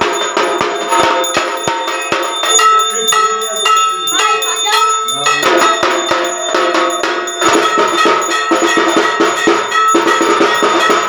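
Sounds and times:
hand bell ringing: 0.0s - 11.0s.

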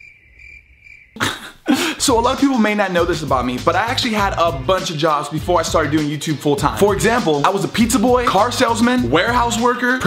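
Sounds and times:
hissing bursts of breath: 1.2s - 2.0s.

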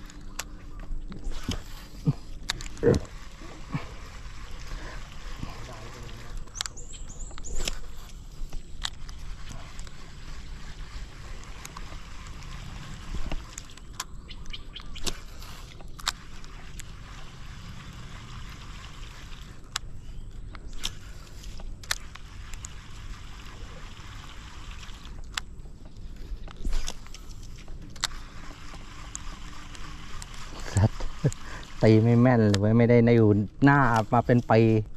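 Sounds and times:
low outdoor rumble: 0.0s - 34.9s.

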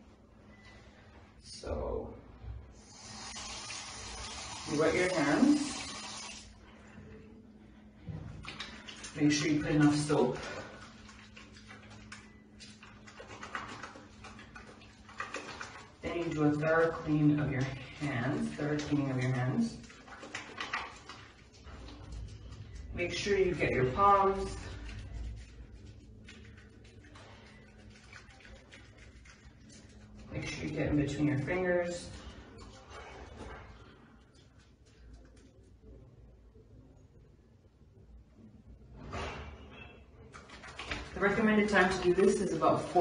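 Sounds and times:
soapy hands rubbing: 2.8s - 6.7s, 8.4s - 35.8s, 40.3s - 43.0s.

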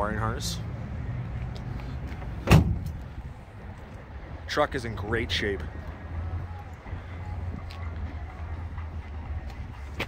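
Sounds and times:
tailgate slamming shut: 2.4s - 3.0s.

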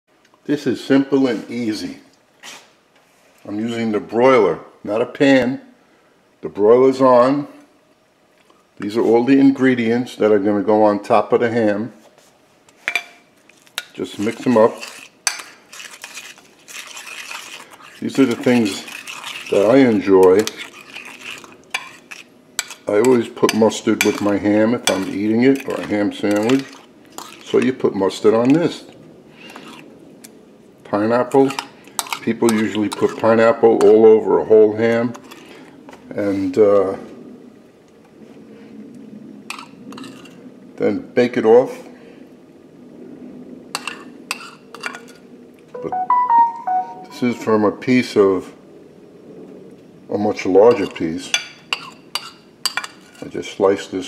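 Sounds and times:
faint steady hum: 0.1s - 40.8s
spoon scraping bowl: 14.1s - 27.7s, 29.5s - 29.8s, 31.5s - 33.4s, 39.5s - 40.4s
metal spoon clinking on cookware: 20.3s - 25.7s.

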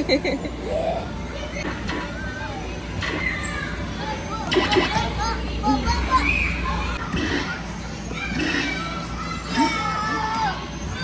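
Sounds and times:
din of children playing: 0.0s - 11.0s
children calling and squealing: 0.5s - 11.0s.

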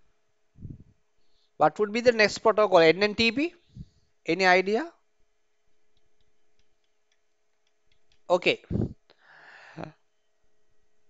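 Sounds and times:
faint steady hum: 0.0s - 11.0s
man speaking: 1.6s - 3.6s, 4.3s - 4.9s
faint irregular clicks: 5.6s - 8.3s.

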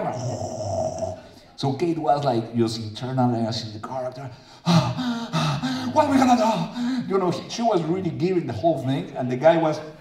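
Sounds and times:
man gasping and moaning: 0.0s - 1.5s, 4.4s - 7.1s.

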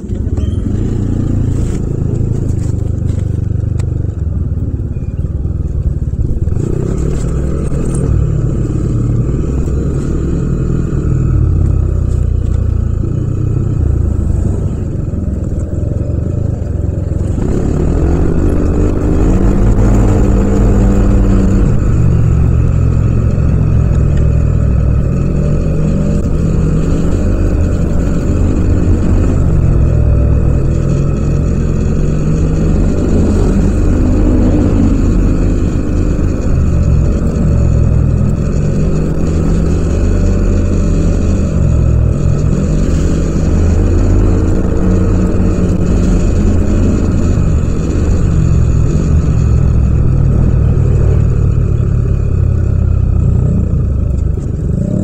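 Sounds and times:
scooter engine revving: 6.1s - 55.0s.

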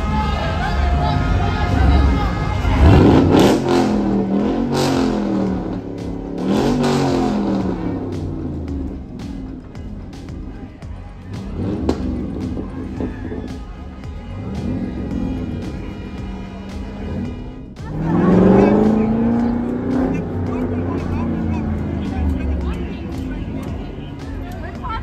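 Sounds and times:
cars passing slowly: 0.0s - 25.0s
crowd voices: 0.0s - 25.0s
music with steady beat: 0.0s - 25.0s.

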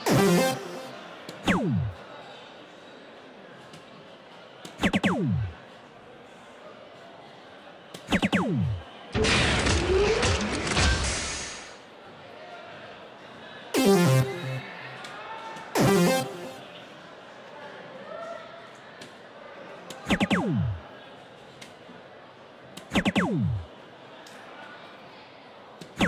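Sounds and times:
loud noisy electronic award effect: 0.0s - 2.0s, 4.8s - 5.6s, 8.1s - 8.8s, 13.8s - 14.9s, 15.8s - 16.7s, 20.1s - 20.8s, 22.9s - 23.7s
falling electronic tone: 0.1s - 2.0s, 4.8s - 5.6s, 8.1s - 8.8s, 13.8s - 14.9s, 15.8s - 16.7s, 20.1s - 20.8s, 22.9s - 23.7s
darts striking electronic board: 1.4s - 2.0s, 4.8s - 5.6s, 8.1s - 8.8s, 20.1s - 20.8s, 22.9s - 23.6s.

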